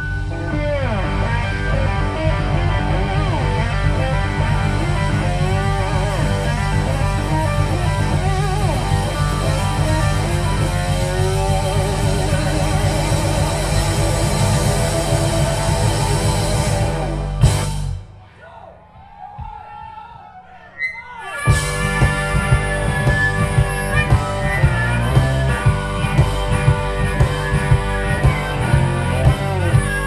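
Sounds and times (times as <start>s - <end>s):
bass guitar: 0.0s - 18.2s, 21.4s - 30.0s
electric guitar lead lines: 0.0s - 18.2s, 21.2s - 30.0s
drums: 0.0s - 30.0s.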